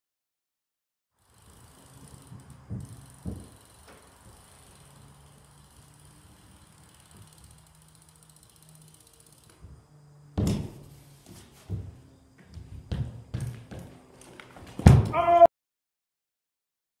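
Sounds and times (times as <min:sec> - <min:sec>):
bike tyres rolling on wooden ramp: 0:01.2 - 0:15.5
loud thumps: 0:10.4 - 0:10.9, 0:14.7 - 0:15.3.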